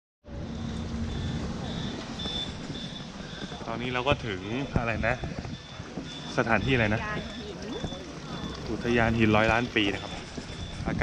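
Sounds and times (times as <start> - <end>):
bus engine idling: 0.3 - 11.0
faint high beep: 0.4 - 11.0.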